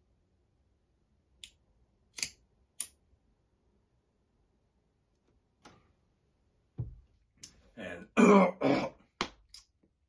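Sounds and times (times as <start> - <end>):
man clearing his throat: 7.9 - 9.1.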